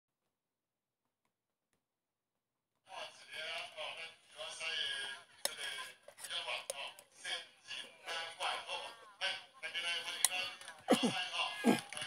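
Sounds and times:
person speaking: 0:10.0 - 0:12.0.

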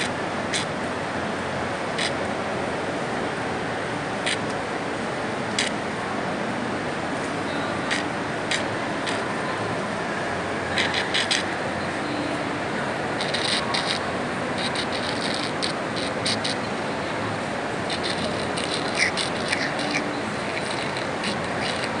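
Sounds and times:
shopping mall background noise: 0:00.0 - 0:22.0
fingers brushing phone microphone: 0:13.2 - 0:16.6, 0:17.9 - 0:22.0.

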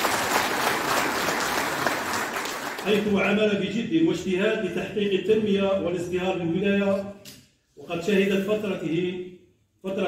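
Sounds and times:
audience applauding: 0:00.0 - 0:03.0.

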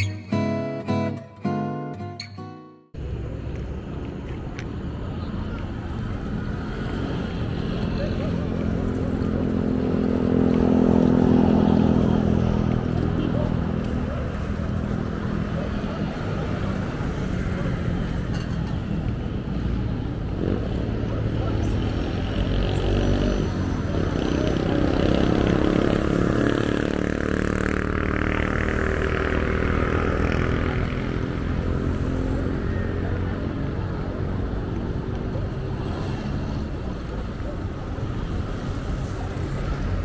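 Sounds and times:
roadside traffic: 0:00.0 - 0:40.0
people's voices: 0:03.0 - 0:40.0.

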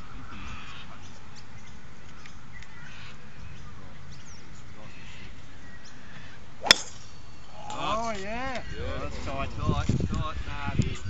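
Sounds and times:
golf driver striking ball: 0:06.6 - 0:07.2.

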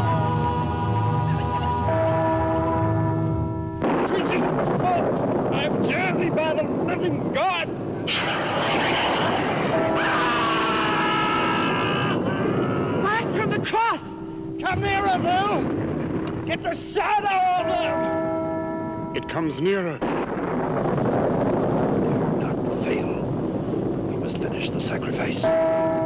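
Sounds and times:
rushing noise: 0:03.8 - 0:16.7
shrieking and wailing cries: 0:09.9 - 0:13.1.

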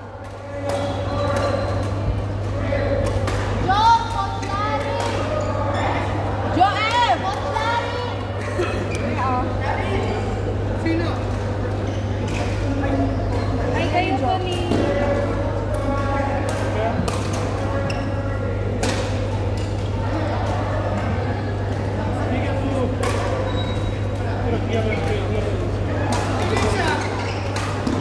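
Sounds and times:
players' voices: 0:00.0 - 0:28.0.

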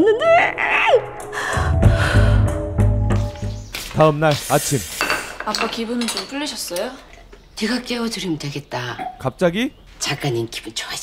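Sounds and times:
dramatic music with deep bass: 0:01.1 - 0:03.8
woman gasping: 0:01.3 - 0:02.6.

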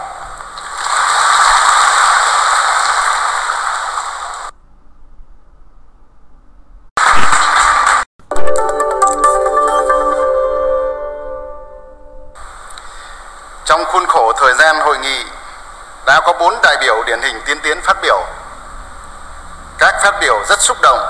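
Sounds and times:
audience applauding: 0:07.0 - 0:08.1
music with ringing tones: 0:08.3 - 0:12.4.

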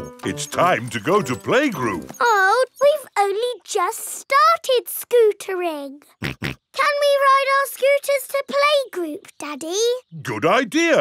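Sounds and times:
high-pitched cartoon voices speaking: 0:01.8 - 0:11.0
pig snorts: 0:06.2 - 0:06.6.

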